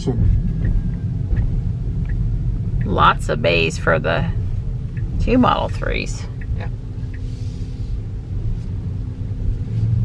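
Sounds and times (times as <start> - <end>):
car cabin rumble: 0.0 - 10.0
low hum: 0.0 - 10.0.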